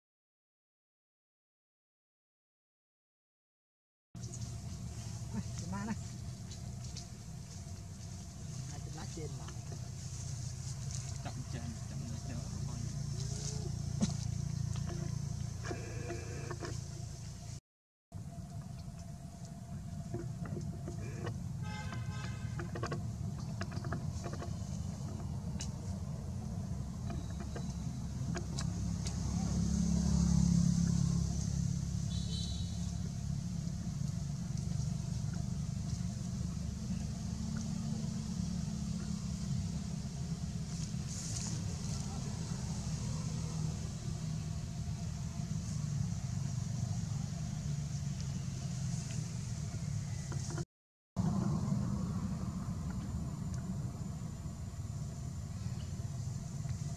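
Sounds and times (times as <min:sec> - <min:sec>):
low outdoor rumble: 0:04.2 - 0:17.6, 0:18.2 - 0:50.6, 0:51.2 - 0:56.9
buzzy pitched call: 0:14.8 - 0:17.0, 0:32.0 - 0:33.1
low rumble: 0:51.2 - 0:56.9.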